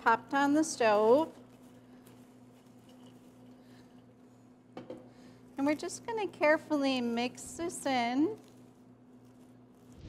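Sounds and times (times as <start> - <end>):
popcorn mixed in steel skillet: 0.0 - 10.0.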